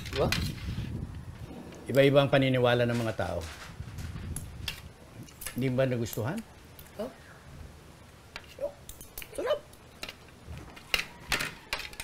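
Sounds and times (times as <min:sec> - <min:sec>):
cutlery clicking against plates: 0:08.4 - 0:12.0.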